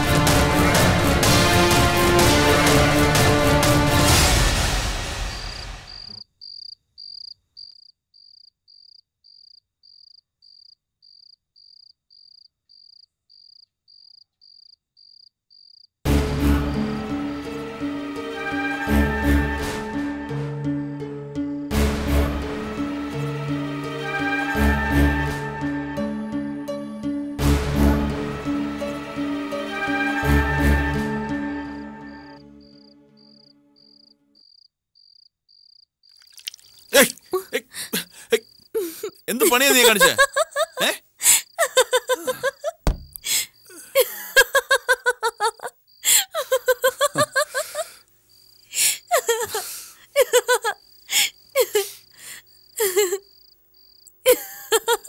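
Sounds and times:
background music: 0:00.0 - 0:06.1, 0:16.1 - 0:33.8, 0:39.3 - 0:41.0
cricket chirping: 0:05.3 - 0:16.0, 0:31.7 - 0:39.2, 0:40.0 - 0:55.0.

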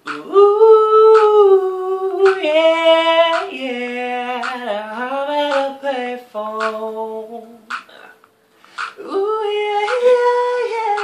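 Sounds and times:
male a cappella singing: 0:00.0 - 0:07.9, 0:09.0 - 0:11.0.

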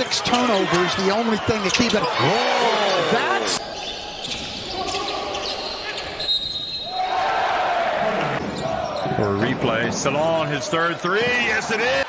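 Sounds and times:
crowd noise in arena: 0:00.0 - 0:12.0.

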